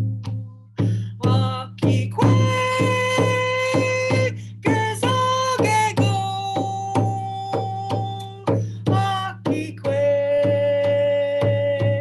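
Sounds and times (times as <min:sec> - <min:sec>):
hand drum beat: 0:00.0 - 0:12.0
woman singing long notes: 0:01.1 - 0:12.0.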